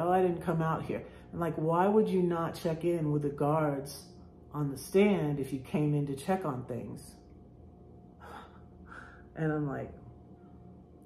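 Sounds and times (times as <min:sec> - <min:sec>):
woman breathing: 0:08.1 - 0:09.4.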